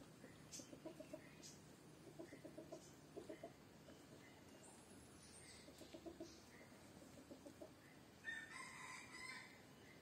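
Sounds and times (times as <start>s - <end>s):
faint chicken clucks: 0.0s - 10.0s
rooster crowing: 8.2s - 9.6s.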